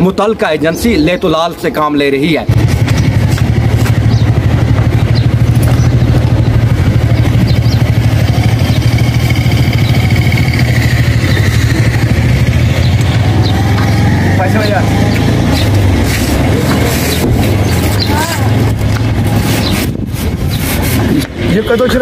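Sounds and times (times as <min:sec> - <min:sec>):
scooter engine running at low revs: 0:02.5 - 0:21.5
person speaking: 0:16.4 - 0:19.4.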